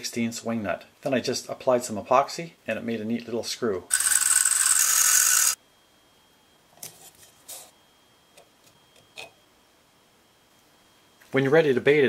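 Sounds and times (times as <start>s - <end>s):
grinding wheel grinding screw: 3.9s - 5.6s.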